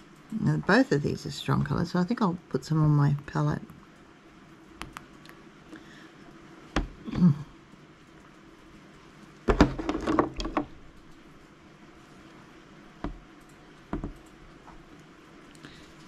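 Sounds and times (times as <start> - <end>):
paint tubes knocking on wood: 9.5 - 10.7, 13.9 - 14.2.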